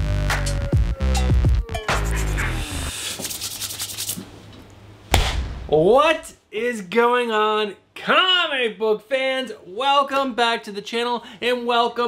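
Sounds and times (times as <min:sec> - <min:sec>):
rustling rubbing noise: 0:02.9 - 0:04.4.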